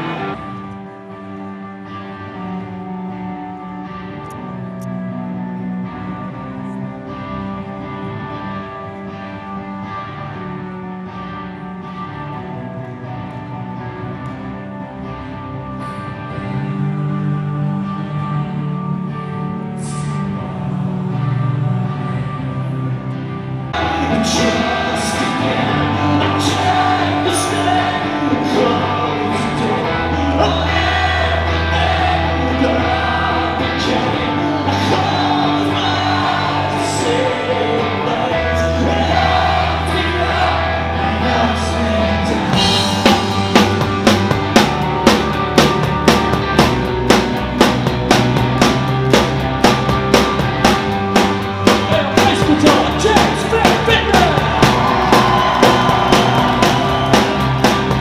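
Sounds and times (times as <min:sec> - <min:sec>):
live rock band: 0:00.0 - 0:58.0
sustained guitar: 0:00.0 - 0:58.0
heavy bass: 0:09.4 - 0:58.0
person singing: 0:15.8 - 0:45.3, 0:51.7 - 0:58.0.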